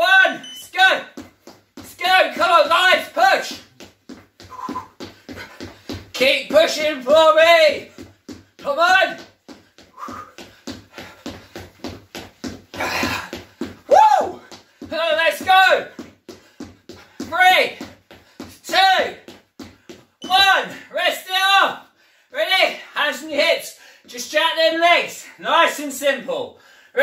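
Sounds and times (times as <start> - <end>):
rapid footfalls on wooden floor: 0.7 - 20.8
short voiced shouts: 20.2 - 21.8.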